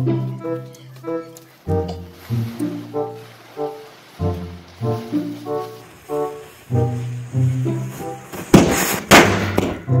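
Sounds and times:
brass music: 0.0 - 10.0
firecrackers banging: 2.4 - 10.0.

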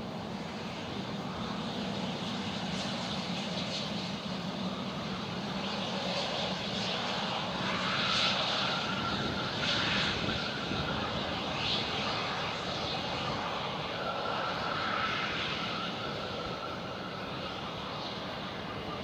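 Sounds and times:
jet engines rushing: 0.0 - 19.0.

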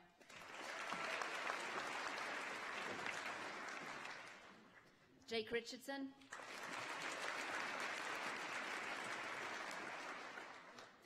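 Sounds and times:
audience applause: 0.3 - 4.6, 6.3 - 11.0.

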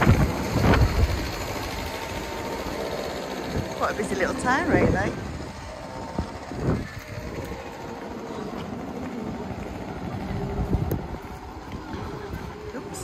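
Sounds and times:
street low rumble: 0.0 - 13.0.

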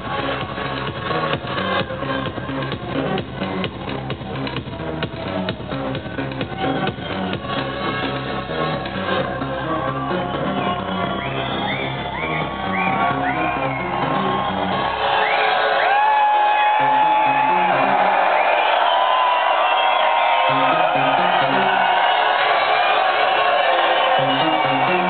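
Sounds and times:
crowd whooping and shouting: 0.0 - 25.0
techno over loudspeakers: 0.0 - 25.0.

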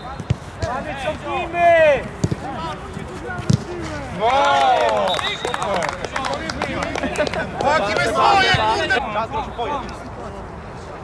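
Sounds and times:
men shouting: 7.6 - 9.0.

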